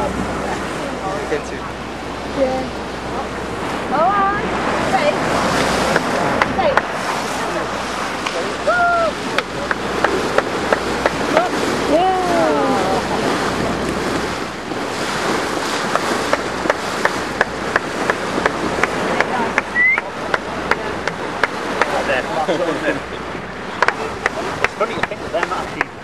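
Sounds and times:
water splashing against boat hull: 0:00.0 - 0:26.0
wind on microphone: 0:00.0 - 0:26.0.

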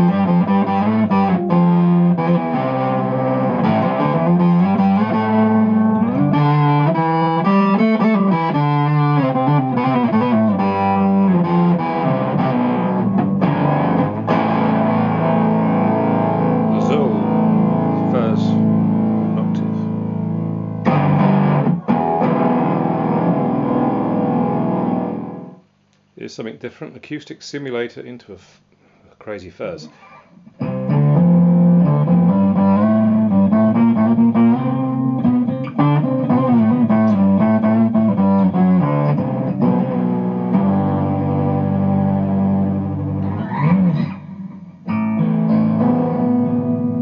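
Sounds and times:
fuzz electric guitar riffs: 0:00.0 - 0:25.6, 0:29.9 - 0:47.0.

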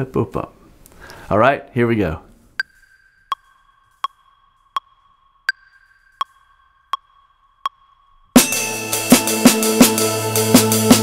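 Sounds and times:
metronome beeps: 0:02.6 - 0:08.6
higher accented metronome beep: 0:02.6 - 0:09.2.

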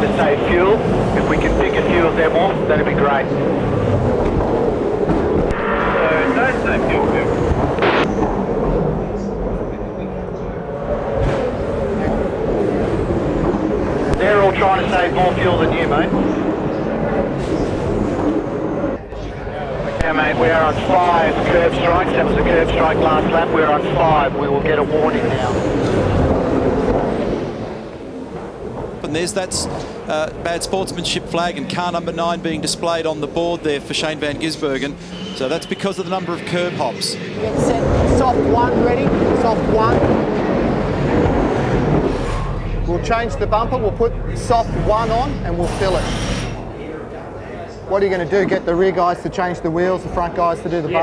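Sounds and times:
race car engine rumble: 0:00.0 - 0:47.9
crackly radio voice: 0:19.2 - 0:25.4.

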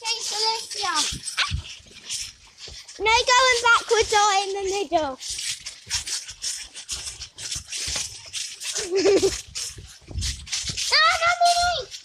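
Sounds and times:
child's voice: 0:00.0 - 0:01.7, 0:03.0 - 0:05.2, 0:10.8 - 0:12.0
clothing rubbing microphone: 0:00.0 - 0:12.0.

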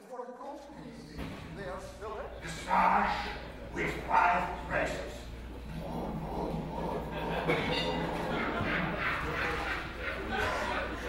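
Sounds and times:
man speaking on stage: 0:00.0 - 0:05.3
low steady hum: 0:00.7 - 0:11.0.

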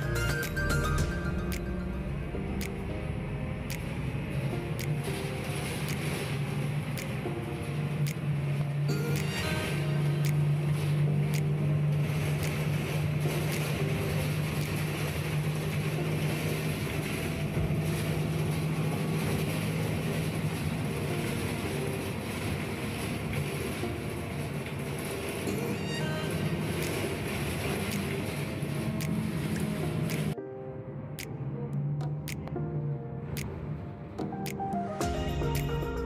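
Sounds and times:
bus engine hum: 0:00.0 - 0:30.4
road and wind noise: 0:00.0 - 0:36.0.

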